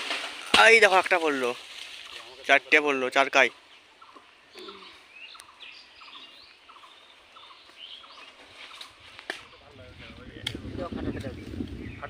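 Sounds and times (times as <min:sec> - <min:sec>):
birds chirping: 0:00.4 - 0:12.0.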